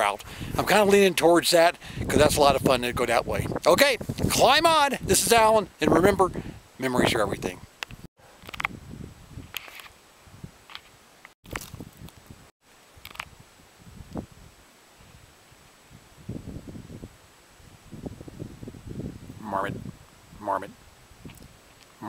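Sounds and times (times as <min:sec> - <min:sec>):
light wind hiss: 0:00.0 - 0:22.0
camera handling clicks and scuffs: 0:07.8 - 0:08.7, 0:09.5 - 0:09.9, 0:13.1 - 0:13.3.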